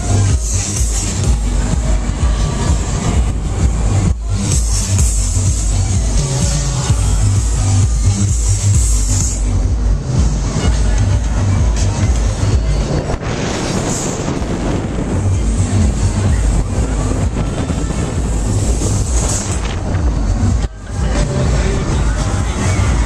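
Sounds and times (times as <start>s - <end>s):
dance music: 0.0s - 23.0s
wind buffeting microphone: 10.0s - 23.0s.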